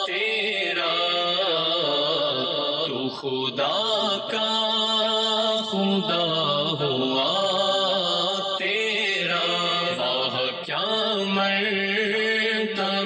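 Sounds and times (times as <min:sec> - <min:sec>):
person chanting devotional melody: 0:00.0 - 0:13.0.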